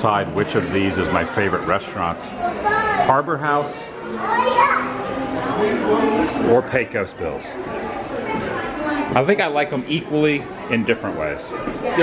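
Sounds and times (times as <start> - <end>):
crowd talking: 0.0 - 12.0
child's voice: 2.4 - 3.1, 4.1 - 5.1.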